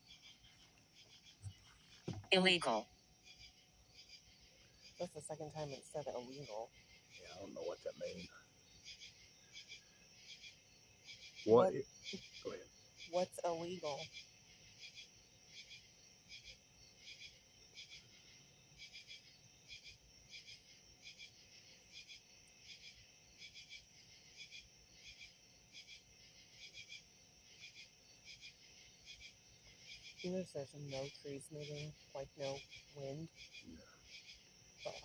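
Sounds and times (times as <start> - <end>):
crickets chirping: 0.0 - 35.0.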